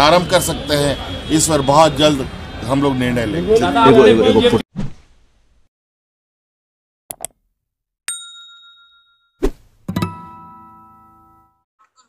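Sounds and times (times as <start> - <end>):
bright bell ding: 8.1 - 9.4.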